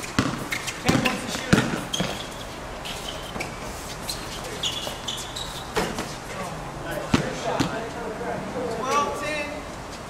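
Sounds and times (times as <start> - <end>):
basketball bouncing on hard court: 0.0 - 2.3, 7.1 - 7.8.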